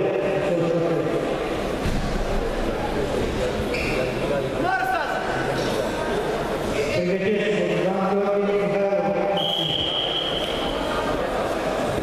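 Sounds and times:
hall background noise: 0:00.0 - 0:12.0.

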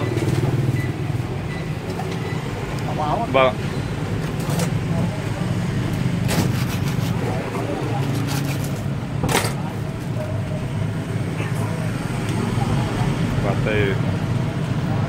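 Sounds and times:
street traffic engines: 0:00.0 - 0:15.0.

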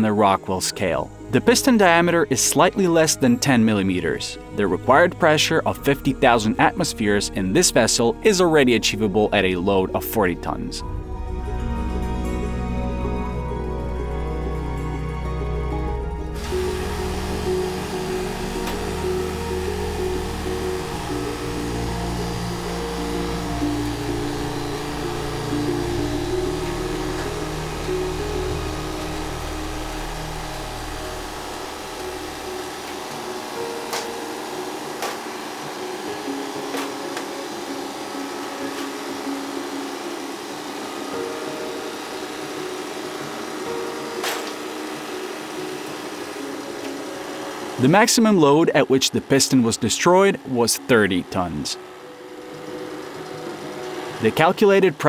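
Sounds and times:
background music: 0:00.0 - 0:55.0
hydraulic pump running: 0:11.0 - 0:55.0.

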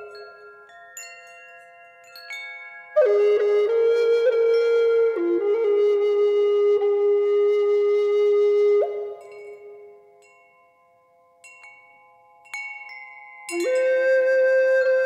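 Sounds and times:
ringing chimes: 0:00.0 - 0:03.2, 0:09.1 - 0:15.0
flute holding low note: 0:03.0 - 0:09.2.

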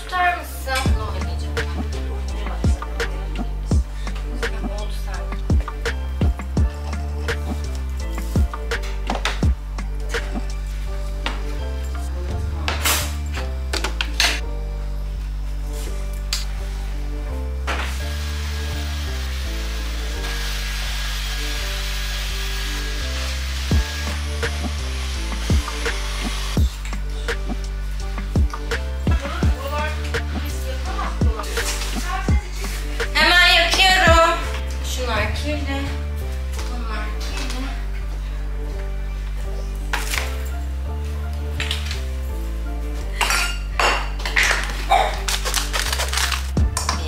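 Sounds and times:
background music with bass line: 0:00.0 - 0:47.0.

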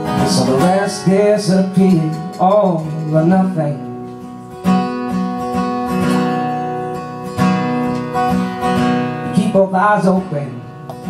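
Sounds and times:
person singing: 0:00.0 - 0:04.0
acoustic guitar strumming: 0:00.0 - 0:11.0.

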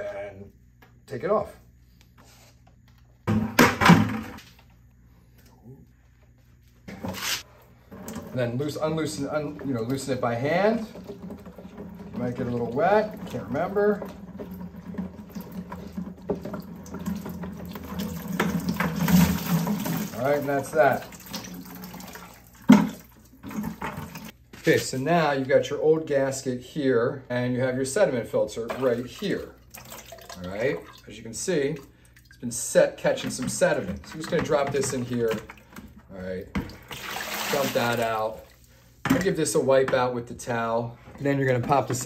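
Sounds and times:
water dripping into plastic bucket: 0:09.5 - 0:24.2, 0:28.7 - 0:32.4.

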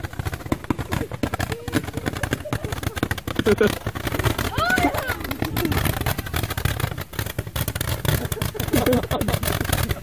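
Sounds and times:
roman candle pops and crackles: 0:00.0 - 0:10.0.

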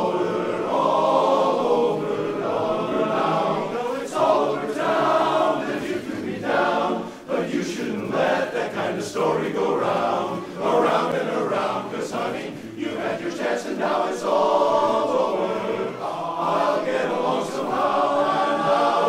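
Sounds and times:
men's chorus singing a cappella: 0:00.0 - 0:19.0.

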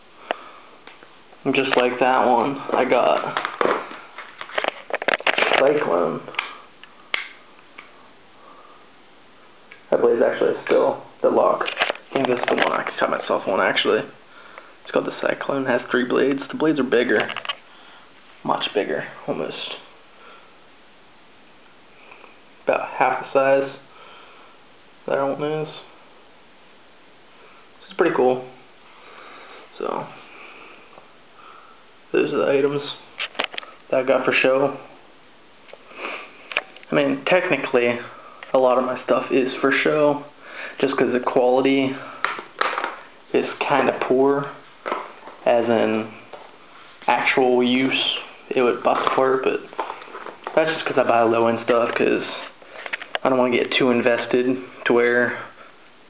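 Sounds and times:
person sniffing: 0:35.8 - 0:36.5.

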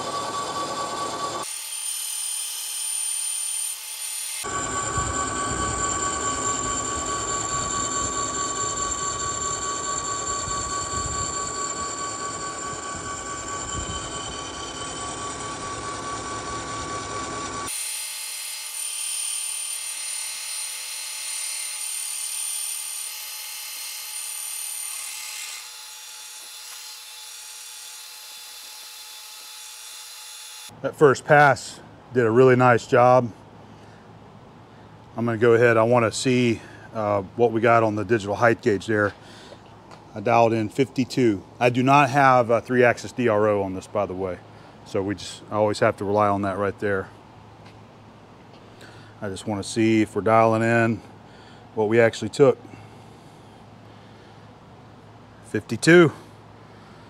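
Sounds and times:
milling machine whining and cutting: 0:00.0 - 0:30.6.

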